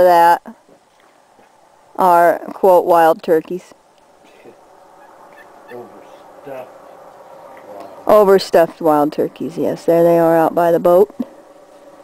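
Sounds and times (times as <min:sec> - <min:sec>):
turkeys gobbling: 0:04.3 - 0:07.2.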